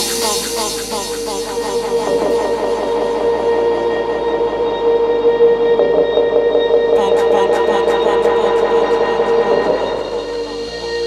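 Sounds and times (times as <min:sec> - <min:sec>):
hi-hat ticks: 0:00.0 - 0:03.0
sustained droning synth chord: 0:00.0 - 0:11.0.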